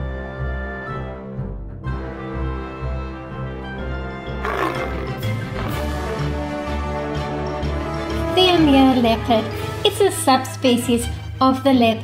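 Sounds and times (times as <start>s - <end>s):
background music: 0.0s - 12.0s
big cat roar: 4.4s - 5.8s.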